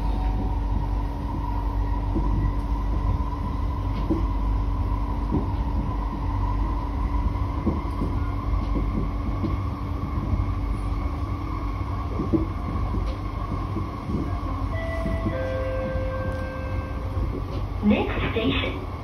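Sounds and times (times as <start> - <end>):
constant whine: 0.0 - 19.0
train low rumble: 0.0 - 19.0.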